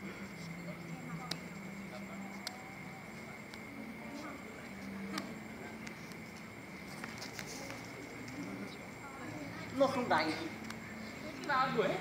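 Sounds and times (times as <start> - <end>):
faint distant voices: 0.0 - 12.0
steady low hum: 0.0 - 12.0.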